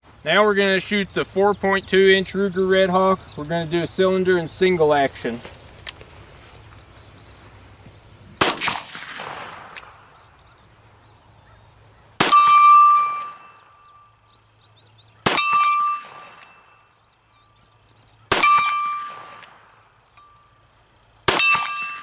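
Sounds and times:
metal target ringing: 0:12.2 - 0:14.0, 0:15.3 - 0:17.0, 0:18.3 - 0:19.4, 0:21.3 - 0:22.0.

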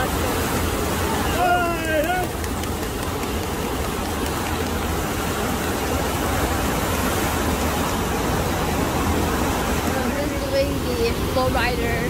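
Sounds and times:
water rushing over wave surface: 0:00.0 - 0:12.0.

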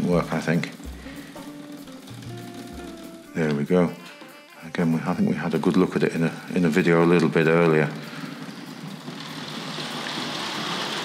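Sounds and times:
model train whirring on rails: 0:06.4 - 0:11.0.

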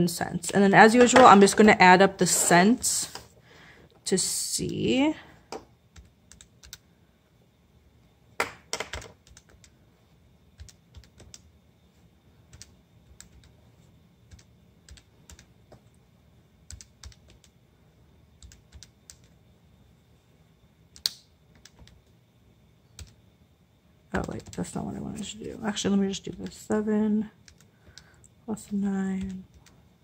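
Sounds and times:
calculator keys clicking: 0:08.8 - 0:09.8, 0:10.6 - 0:11.5, 0:16.7 - 0:17.5, 0:18.4 - 0:19.3.

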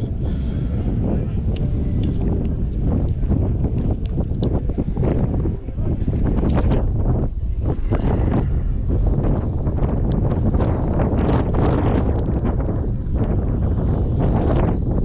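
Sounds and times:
wind buffeting microphone: 0:00.0 - 0:15.0.

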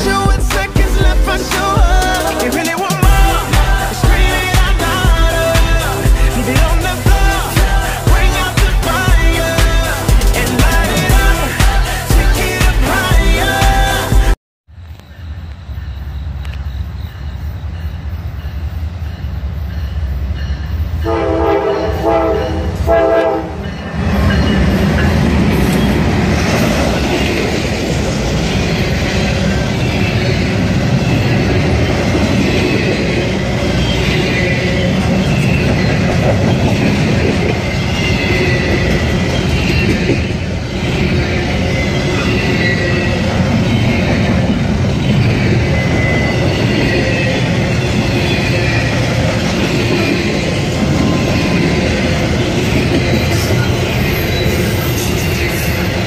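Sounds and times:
freight train rumbling and clattering: 0:17.6 - 0:56.0
train air horn blasts: 0:21.0 - 0:23.7.

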